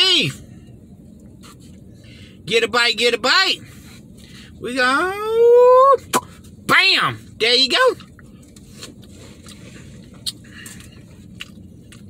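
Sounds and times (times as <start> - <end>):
low steady hum: 0.0 - 12.0
person chewing food: 8.0 - 12.0.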